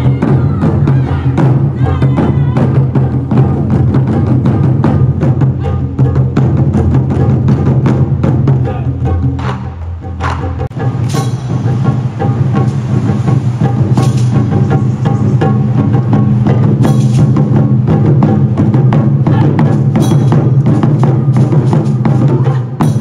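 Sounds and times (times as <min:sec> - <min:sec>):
taiko drums playing: 0:00.0 - 0:23.0.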